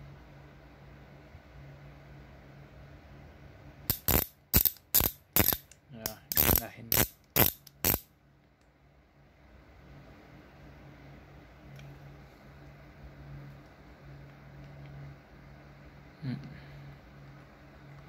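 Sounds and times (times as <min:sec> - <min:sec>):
ratchet wrench clicking: 0:03.9 - 0:08.1.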